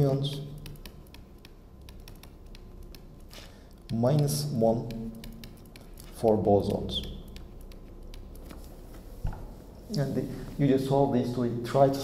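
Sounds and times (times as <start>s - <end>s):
stylus tapping on a screen: 0.2s - 3.2s, 3.8s - 8.5s.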